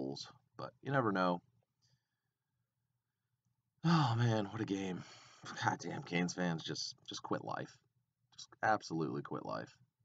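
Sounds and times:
man sighing oh: 3.8 - 4.2.

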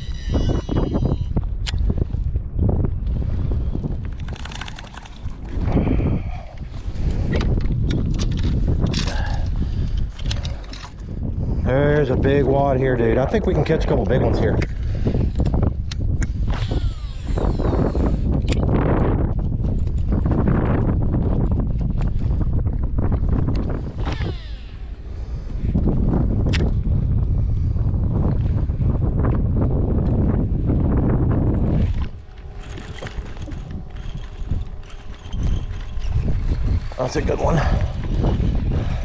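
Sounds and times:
mechanical whine: 0.0 - 2.0, 11.6 - 19.3, 23.1 - 26.7, 29.8 - 39.0
wind buffeting microphone: 0.0 - 39.0.

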